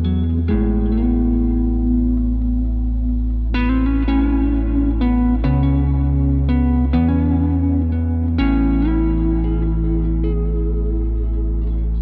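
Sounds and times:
deep bass note: 0.0s - 12.0s
electric guitar chord ringing: 0.0s - 12.0s.

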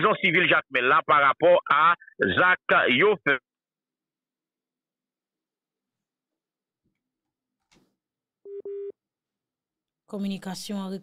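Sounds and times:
telephone tone beeps: 8.5s - 9.0s.

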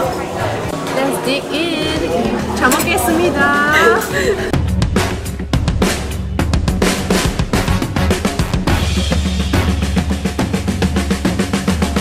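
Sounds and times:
steady bass line: 1.6s - 12.0s
fast drum-kit beat: 4.5s - 12.0s.

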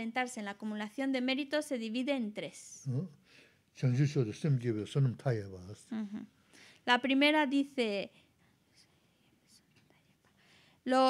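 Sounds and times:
woman speaking: 0.0s - 2.8s, 5.9s - 6.3s, 6.9s - 8.1s.

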